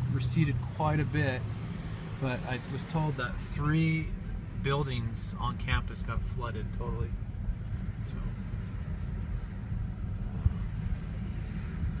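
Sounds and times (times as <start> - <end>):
road and engine rumble: 0.0 - 12.0.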